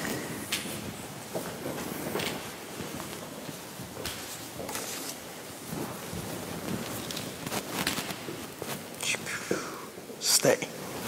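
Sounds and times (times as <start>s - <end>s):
handling and rustling: 0.0s - 9.2s
person whispering: 9.0s - 10.7s.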